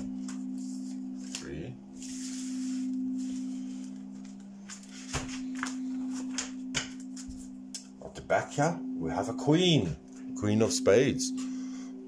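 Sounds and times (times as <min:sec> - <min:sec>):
singing bowl drone: 0:00.0 - 0:12.0.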